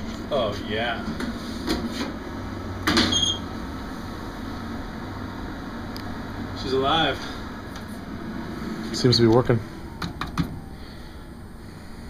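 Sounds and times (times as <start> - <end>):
machine humming: 2.2 - 12.0.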